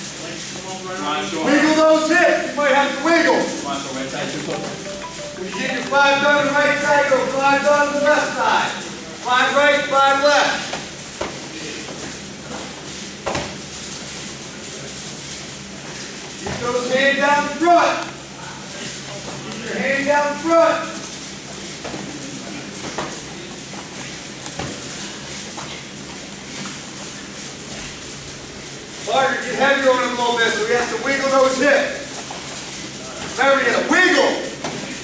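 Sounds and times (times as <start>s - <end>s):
person speaking: 4.4s - 8.4s.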